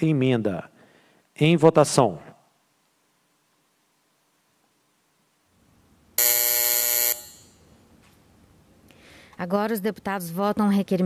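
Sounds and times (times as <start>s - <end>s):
electronic voting buzzer tone: 6.2s - 7.6s.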